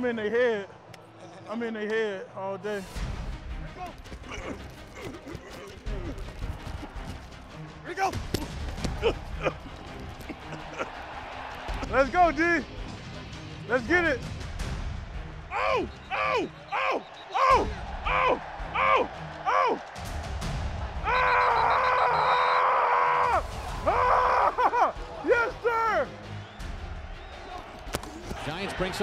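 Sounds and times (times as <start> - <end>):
music: 0.0 - 29.0.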